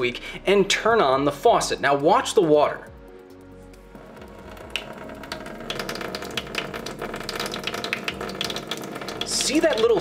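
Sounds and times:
faucet stream splashing in sink: 3.9s - 10.0s.

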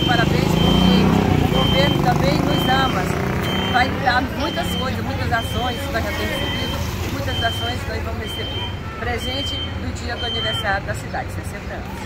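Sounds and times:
vehicle engine running: 0.0s - 7.4s
high electronic beep: 0.0s - 10.8s.

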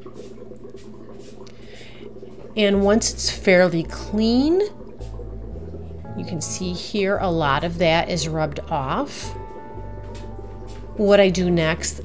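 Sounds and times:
hand scrubbing inside bottle: 0.0s - 2.6s, 4.4s - 5.4s
tap water splashing into bottle: 0.0s - 12.0s.

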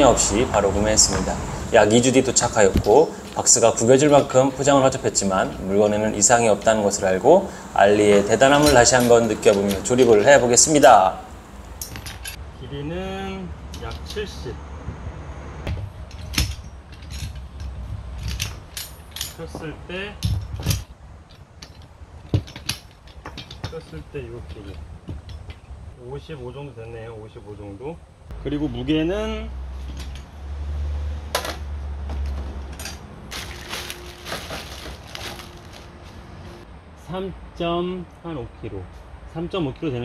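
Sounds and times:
metal frame clinks and clacks: 11.8s - 12.4s, 15.7s - 25.7s.

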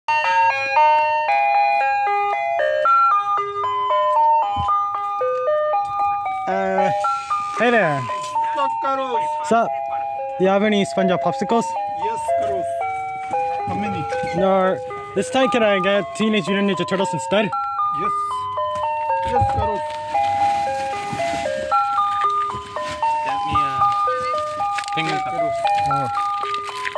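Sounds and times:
ice cream truck chime melody: 0.1s - 26.9s.

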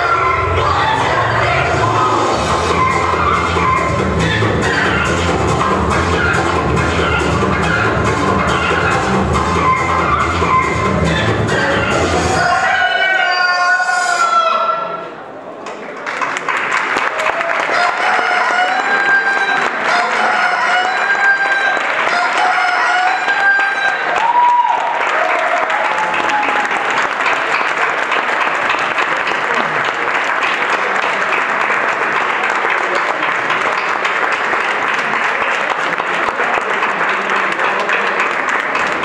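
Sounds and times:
dance music: 0.0s - 14.2s, 17.7s - 24.5s
audience applause: 15.9s - 39.0s.

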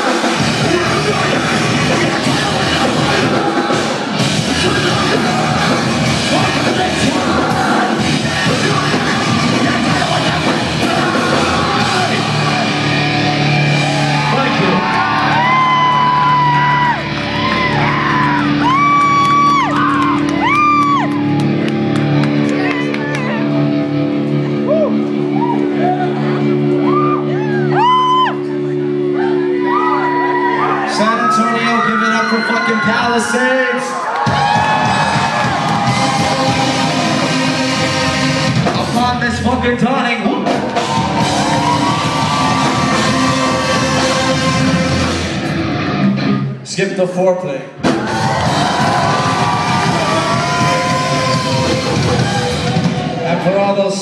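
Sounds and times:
live rock band playing: 0.0s - 30.9s, 34.2s - 46.7s, 47.7s - 54.0s
low bass notes: 0.0s - 31.2s, 34.3s - 46.8s, 47.6s - 54.0s
crowd cheering and shouting: 0.0s - 46.6s, 47.2s - 54.0s
high sliding melody line: 34.8s - 39.3s, 40.8s - 46.6s.

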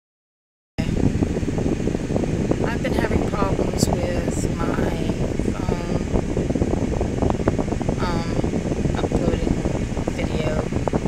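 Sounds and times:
low rumble inside car cabin: 0.8s - 11.0s.

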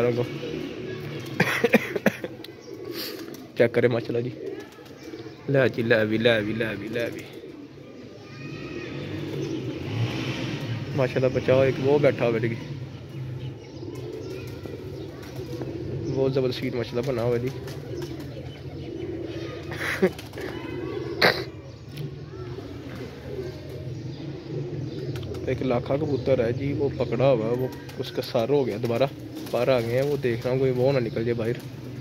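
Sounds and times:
pigeons cooing: 0.0s - 32.0s
person coughing: 1.4s - 2.3s, 21.2s - 21.6s.

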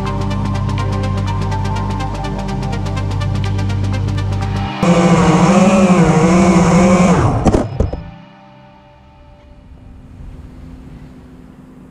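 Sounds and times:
electronic background music: 0.0s - 10.1s
drone motors and propellers whining: 2.8s - 8.4s
drone landing knock: 4.8s - 8.2s.

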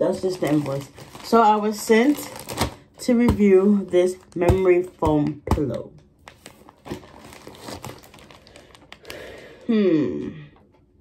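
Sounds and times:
plastic wrapping crinkling: 0.0s - 9.6s.

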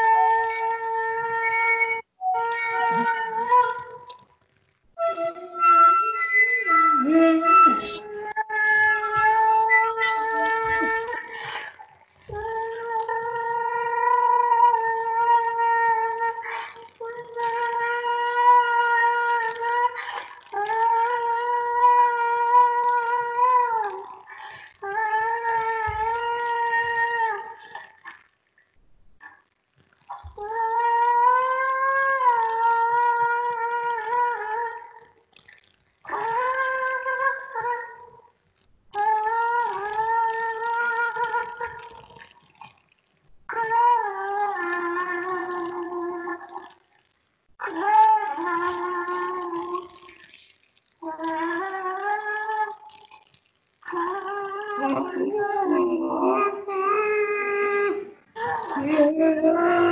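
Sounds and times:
wind instrument long notes: 5.0s - 11.2s.

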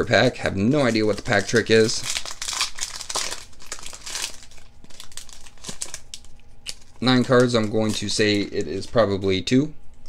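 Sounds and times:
foil wrapper crinkling: 0.0s - 9.4s.

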